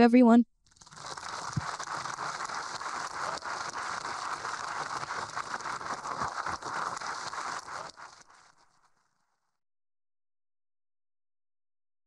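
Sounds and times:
audience applauding: 1.1 - 7.9.

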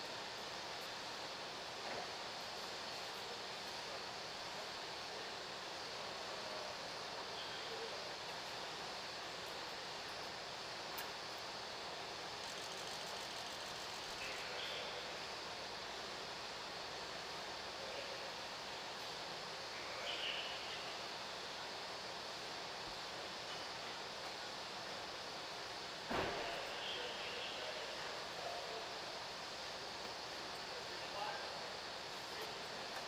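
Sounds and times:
garage background noise: 0.0 - 33.0
sharp thump: 26.1 - 26.6.

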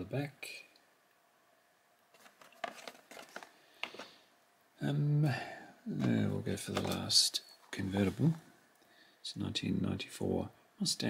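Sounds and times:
toy packaging taps and rustles: 2.1 - 4.1, 6.7 - 7.0.

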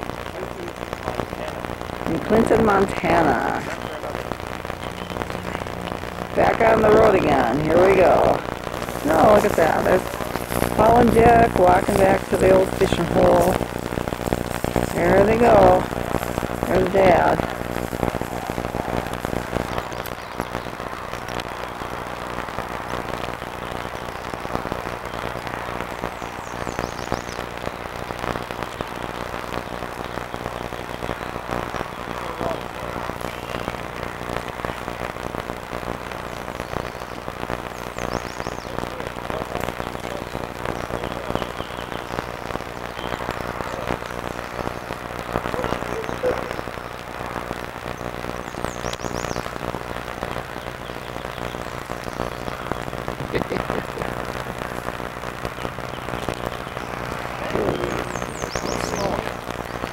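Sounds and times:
electrical hum and crackle: 0.0 - 59.9
steady hiss: 0.0 - 59.9.

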